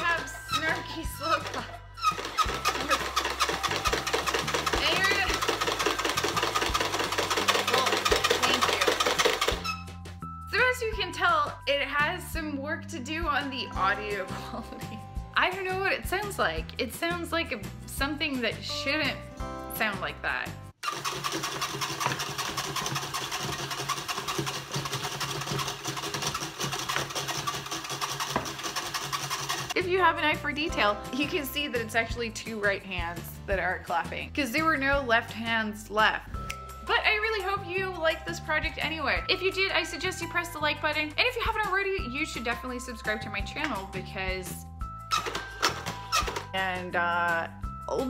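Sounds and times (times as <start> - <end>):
plastic hands clapping rattle: 1.4 - 9.7.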